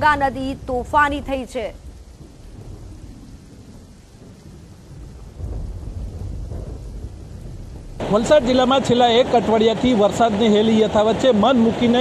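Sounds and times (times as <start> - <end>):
floodwater rushing over spillway: 7.8 - 12.0.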